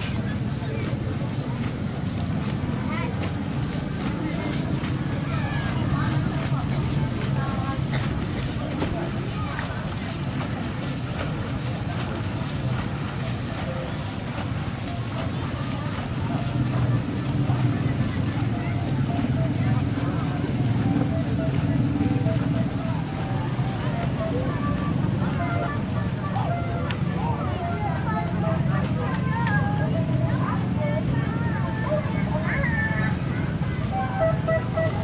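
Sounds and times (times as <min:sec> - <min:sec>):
distant voices: 0:00.0 - 0:35.0.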